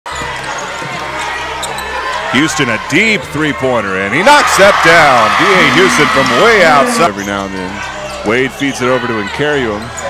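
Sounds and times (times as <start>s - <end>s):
arena crowd murmur: 0.1s - 10.0s.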